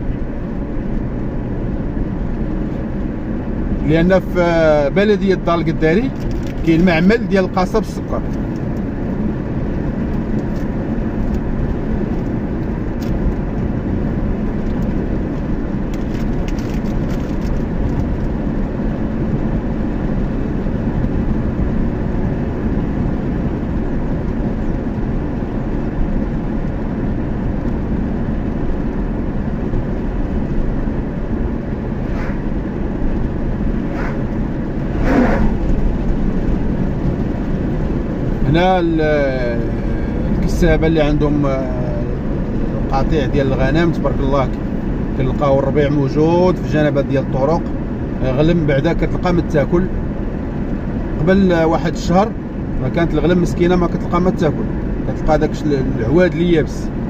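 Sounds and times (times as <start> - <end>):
car road noise from cabin: 0.0 - 57.0.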